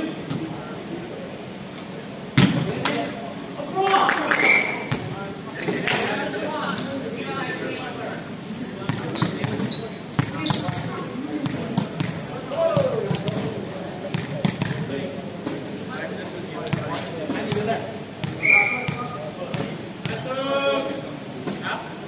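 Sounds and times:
players talking and calling: 0.0 - 22.0
short sharp squeak: 0.2 - 0.6, 18.4 - 18.9
ball bouncing on court floor: 8.9 - 12.2, 12.8 - 13.5, 14.1 - 14.9.

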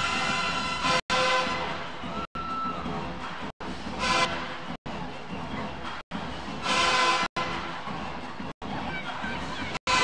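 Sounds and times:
loud horn-like tone: 0.0 - 1.9, 4.0 - 4.7, 6.6 - 7.8
crowd noise: 0.0 - 10.0.

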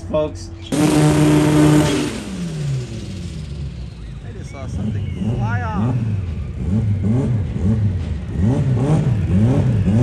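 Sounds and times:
race car engine revving in blips: 0.7 - 10.0.

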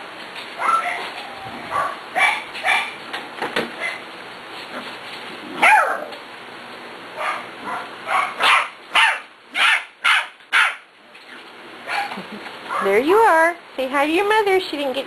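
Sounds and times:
puppy barking in high yaps: 0.6 - 3.0, 5.6 - 6.2, 7.2 - 10.9, 11.8 - 13.0.

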